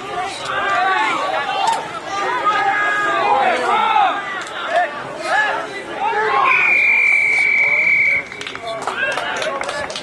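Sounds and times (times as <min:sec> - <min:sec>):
players' voices: 0:00.0 - 0:10.0
referee's whistle blast: 0:06.4 - 0:08.3.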